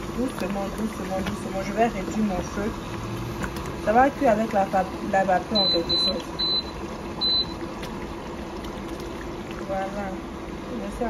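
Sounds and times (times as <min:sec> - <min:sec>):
sauce simmering in a pot: 0:00.0 - 0:11.0.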